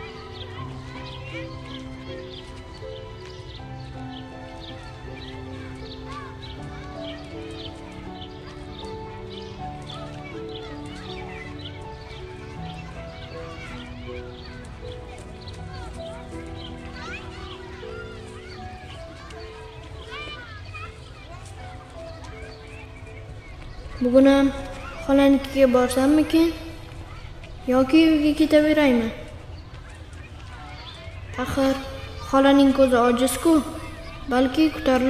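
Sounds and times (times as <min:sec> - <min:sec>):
slow ambient music: 0:00.0 - 0:35.0
small birds chirping: 0:00.0 - 0:35.0.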